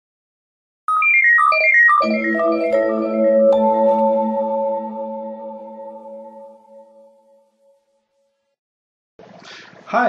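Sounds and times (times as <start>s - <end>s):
bright chiming jingle: 1.4s - 7.3s.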